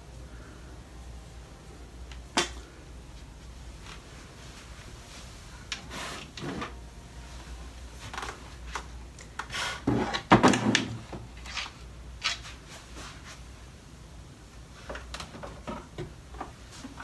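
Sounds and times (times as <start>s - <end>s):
plastic containers clattering: 9.8s - 11.2s
plastic drawers knocking and clicking: 9.9s - 11.2s.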